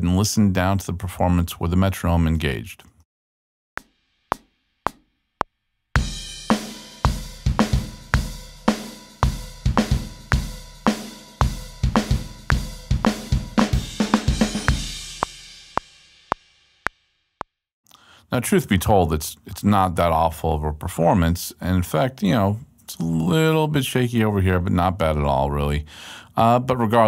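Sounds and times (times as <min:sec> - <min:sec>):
rock drum kit playing: 0:06.0 - 0:16.4.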